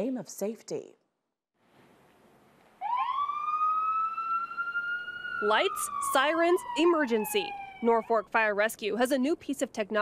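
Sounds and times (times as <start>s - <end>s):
ambulance siren wailing: 2.8s - 8.3s
faint street noise: 4.2s - 10.0s.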